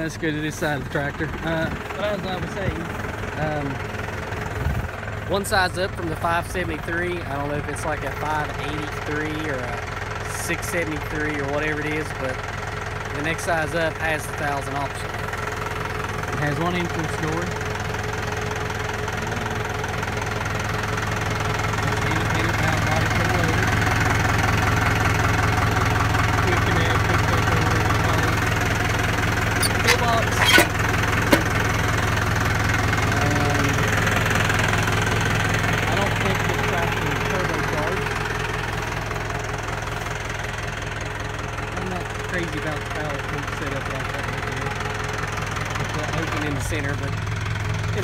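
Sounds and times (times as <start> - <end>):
tractor diesel engine idling: 0.0 - 48.0.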